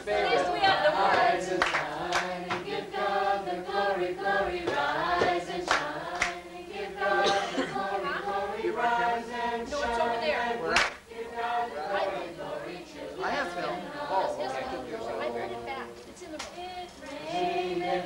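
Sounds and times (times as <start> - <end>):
group singing unaccompanied: 0.0 - 18.0
hand claps: 1.1 - 2.7, 4.6 - 6.4, 10.7 - 11.0, 16.4 - 16.6.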